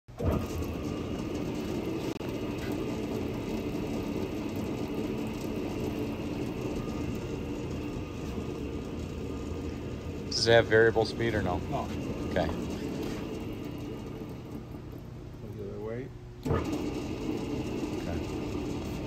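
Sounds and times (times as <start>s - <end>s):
electric motor hum: 0.1s - 19.0s.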